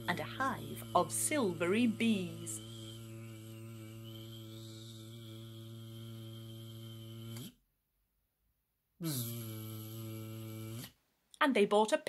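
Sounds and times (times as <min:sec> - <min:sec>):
low droning buzz: 0:00.0 - 0:07.6.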